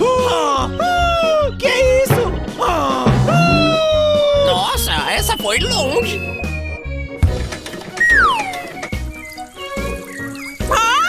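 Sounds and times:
background music with pulsing bass: 0:02.1 - 0:04.9.

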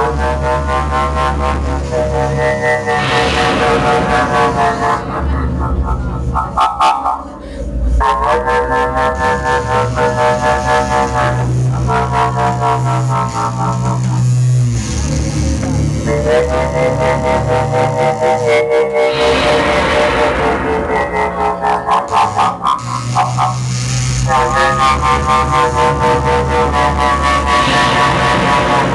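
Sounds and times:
deep bass drone: 0:00.0 - 0:28.9
distorted droning guitar tones: 0:00.0 - 0:28.9.

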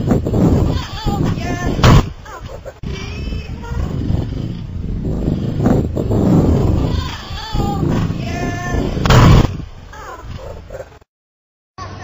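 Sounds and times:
rough loud noise: 0:00.0 - 0:11.0
loud bang: 0:00.1 - 0:09.8
voices: 0:00.5 - 0:11.0.

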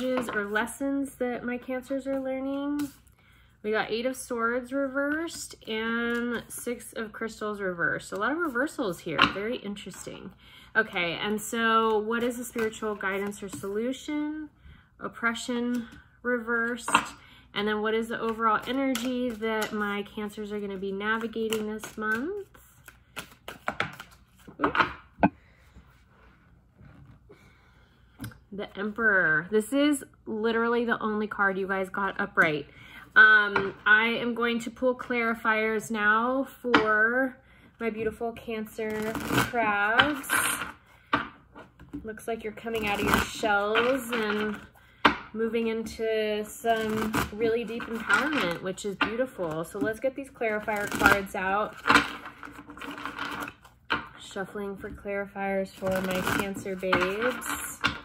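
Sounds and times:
cards shuffling: 0:21.2 - 0:25.0.

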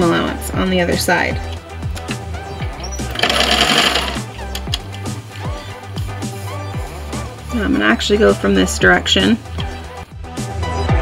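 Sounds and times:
background music with steady beat: 0:00.0 - 0:11.0
sewing machine stitching: 0:03.1 - 0:04.2.

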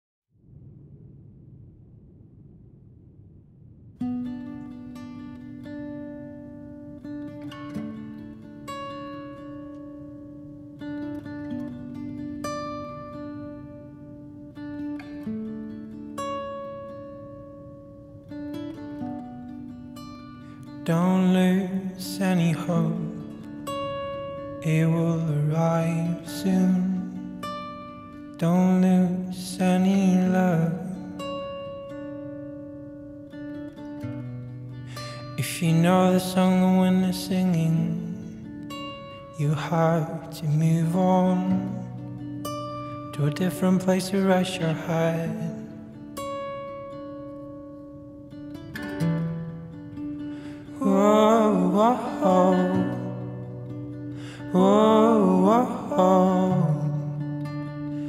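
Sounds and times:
acoustic guitar picking slow notes: 0:04.0 - 0:58.0.

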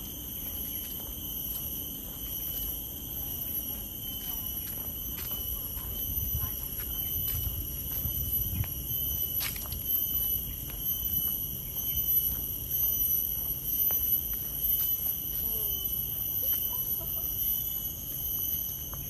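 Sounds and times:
footsteps on paved path: 0:00.0 - 0:19.0
high-pitched insect drone: 0:00.0 - 0:19.0.

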